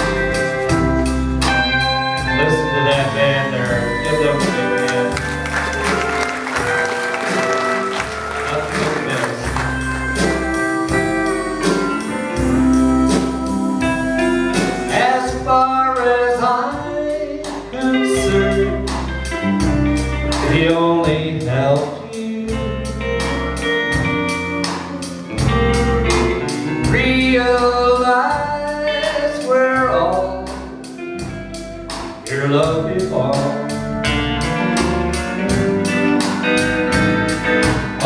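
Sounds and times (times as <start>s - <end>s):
pedal steel guitar gliding notes: 0.0s - 21.0s
country band playing: 0.0s - 38.0s.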